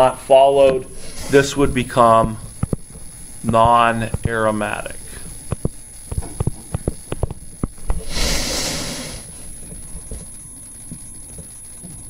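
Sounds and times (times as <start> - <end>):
hiss-like rush of noise: 0.8 - 2.0, 7.9 - 9.5.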